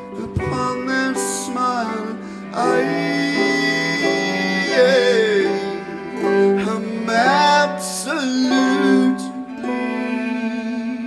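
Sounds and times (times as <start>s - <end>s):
instrumental accompaniment: 0.0s - 11.0s
man singing a long held note: 0.0s - 11.0s.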